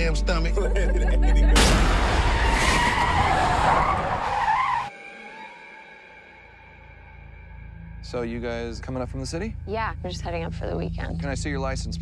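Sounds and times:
road noise: 1.8 - 4.9
car tires screeching: 2.0 - 4.9.

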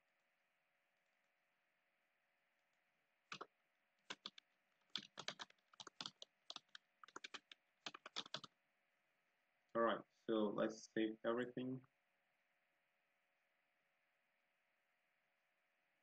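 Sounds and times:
typing on computer keyboard: 3.3 - 8.5.

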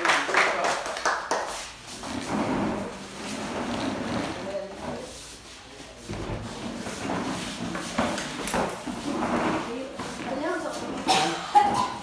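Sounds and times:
people applauding: 0.0 - 1.6.

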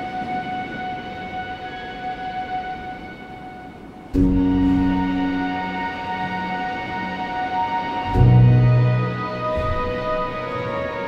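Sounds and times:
soft piano notes ringing: 0.0 - 11.0.

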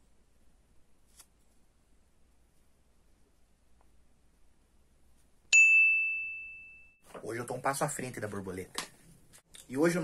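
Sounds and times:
small bell ding: 5.5 - 7.0.

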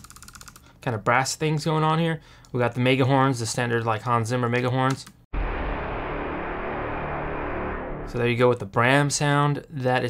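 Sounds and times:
low cinematic brass blast: 5.3 - 8.4.

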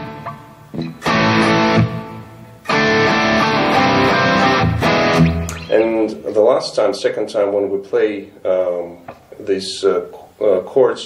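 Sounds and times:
electric guitar power chords: 0.0 - 6.3.

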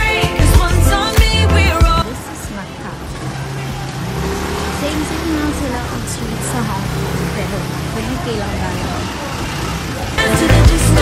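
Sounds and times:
motor scooters running: 0.0 - 11.0
small truck engine: 0.0 - 11.0
traffic noise: 0.0 - 11.0.

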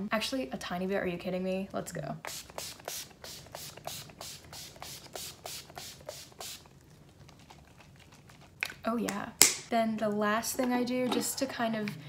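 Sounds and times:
spray bottle hissing: 2.2 - 6.7.

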